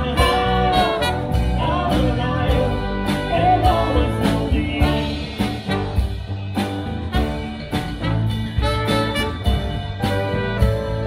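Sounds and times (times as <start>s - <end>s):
bass: 0.0s - 11.0s
drums: 0.0s - 11.0s
electric guitar: 0.0s - 11.0s
keyboard: 0.0s - 11.0s.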